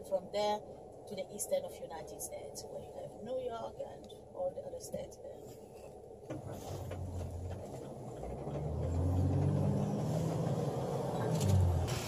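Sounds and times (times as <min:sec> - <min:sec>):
van engine and road noise: 0:00.0 - 0:12.0.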